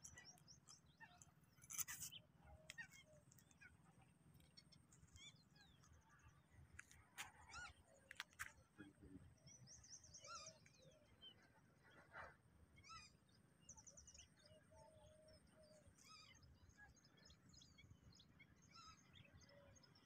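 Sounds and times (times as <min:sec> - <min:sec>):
birds chirping and trilling: 0:00.0 - 0:20.0.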